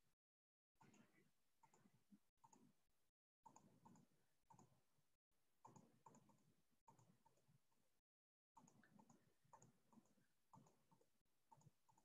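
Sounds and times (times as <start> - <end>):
faint computer mouse clicks: 0.8 - 2.7, 3.5 - 4.8, 5.6 - 7.5, 8.6 - 12.0.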